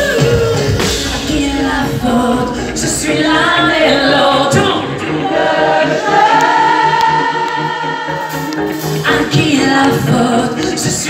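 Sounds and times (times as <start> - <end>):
male singer high voice: 0.0 - 5.3
live pop band playing: 0.0 - 11.0.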